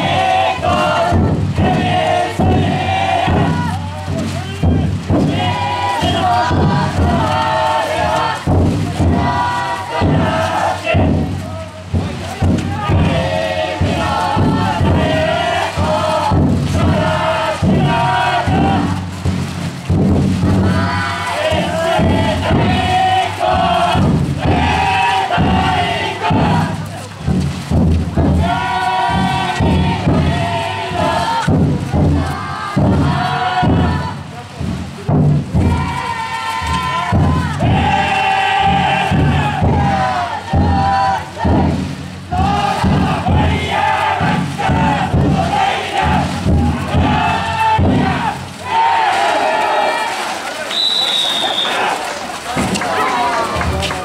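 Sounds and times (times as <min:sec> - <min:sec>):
low thuds: 0:00.0 - 0:50.1
people chanting and shouting in unison: 0:00.0 - 0:54.0
high whistle-like tone: 0:50.7 - 0:51.8.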